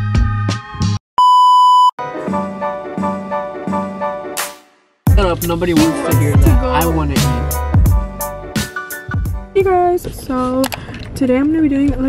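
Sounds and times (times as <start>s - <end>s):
test-tone beep: 1.2s - 2.0s
music with repeating notes: 2.0s - 9.6s.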